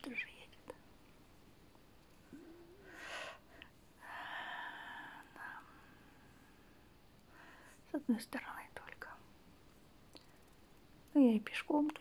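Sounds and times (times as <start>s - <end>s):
woman whispering: 0.0s - 0.9s, 4.0s - 5.9s, 7.8s - 9.3s, 11.1s - 12.0s.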